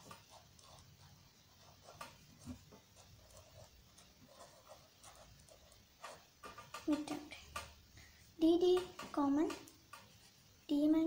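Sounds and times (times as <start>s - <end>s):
pen scratching on paper: 0.0s - 6.8s
person speaking: 6.8s - 7.7s.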